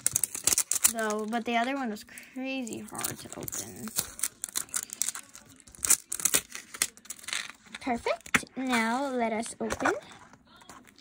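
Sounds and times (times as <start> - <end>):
plastic wrapping crinkling: 0.0 - 8.3.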